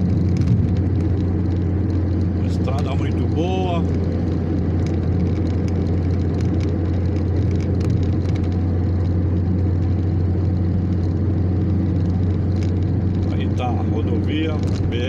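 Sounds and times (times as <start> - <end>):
car cabin road noise at speed: 0.0 - 15.0.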